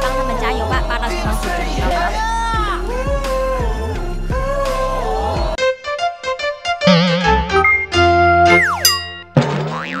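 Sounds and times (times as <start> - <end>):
wobbling warbling tone: 6.8 - 10.0.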